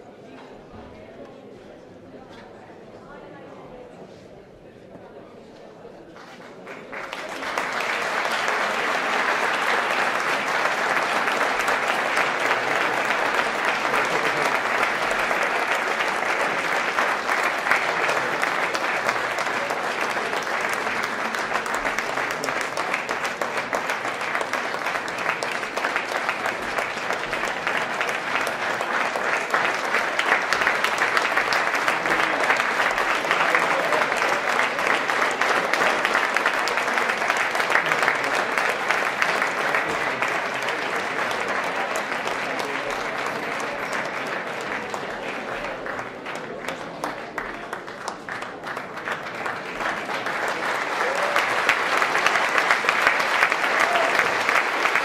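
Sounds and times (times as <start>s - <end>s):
audience applauding: 6.2s - 55.0s.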